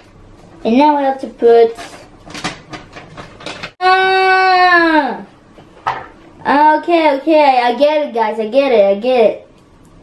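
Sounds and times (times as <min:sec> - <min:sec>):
boy's held vocal aah: 0:03.8 - 0:05.3.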